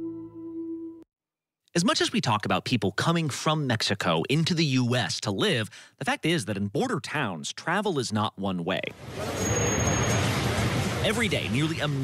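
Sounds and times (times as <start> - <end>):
road traffic rumble: 8.9 - 12.0
thin high whistle: 9.3 - 10.2.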